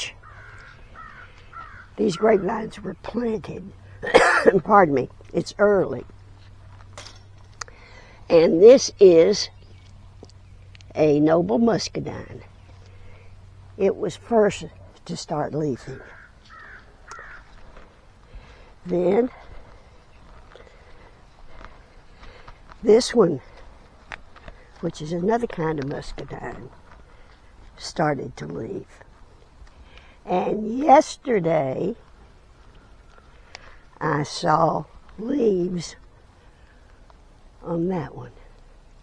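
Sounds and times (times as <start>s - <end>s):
crow cawing faintly: 0.1s - 2.5s, 15.8s - 22.7s, 32.0s - 34.0s
crow cawing: 0.2s - 2.5s, 15.9s - 18.7s.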